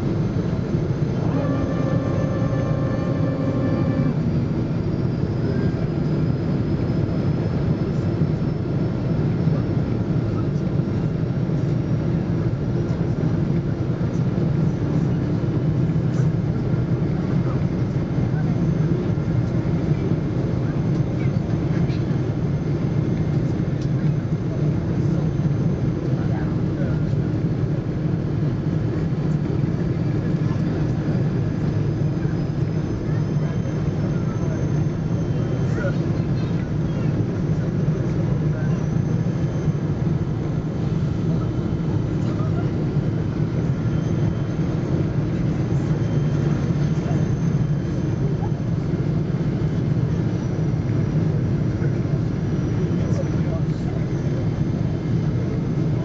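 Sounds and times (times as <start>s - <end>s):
airplane cabin engine rumble: 0.0s - 56.0s
faint high tones: 1.2s - 4.4s.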